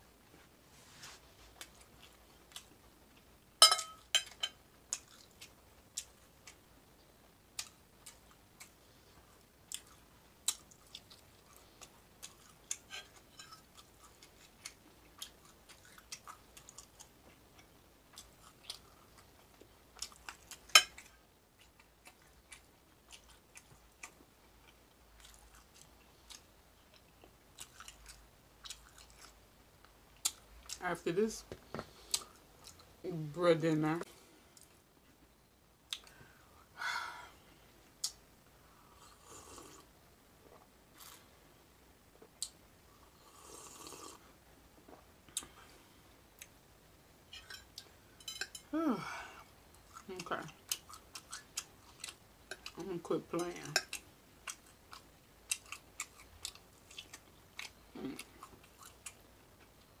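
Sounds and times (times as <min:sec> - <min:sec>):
person chewing: 0:01.5 - 0:02.8, 0:04.0 - 0:06.6, 0:07.6 - 0:08.8, 0:09.7 - 0:29.4, 0:31.9 - 0:32.9, 0:35.9 - 0:36.2, 0:40.4 - 0:41.3, 0:49.7 - 0:52.8, 0:53.7 - 0:59.8.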